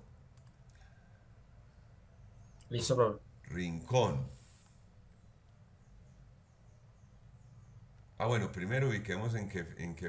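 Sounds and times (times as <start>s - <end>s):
low room hum: 0.0s - 10.0s
computer mouse click: 0.3s - 0.8s.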